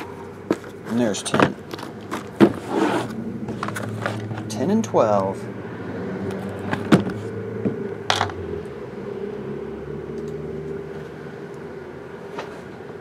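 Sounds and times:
box scraping: 0.5s - 4.5s.

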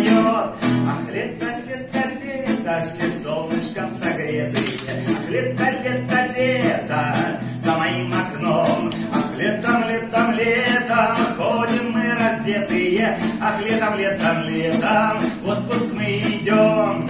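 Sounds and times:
man singing: 0.0s - 17.0s
strummed classical guitar: 0.0s - 17.0s.

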